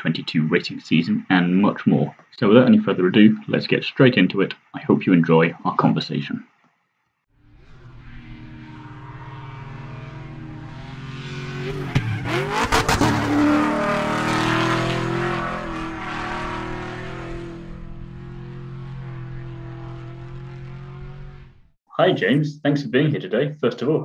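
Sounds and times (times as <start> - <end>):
race car engine: 7.4 - 21.8.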